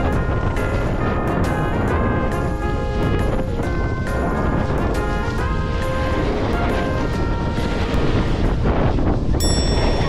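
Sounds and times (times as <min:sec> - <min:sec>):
wind rushing over microphone: 0:00.0 - 0:10.0
snowboard edges scraping snow: 0:00.1 - 0:09.4
high ringing tone: 0:09.4 - 0:10.0.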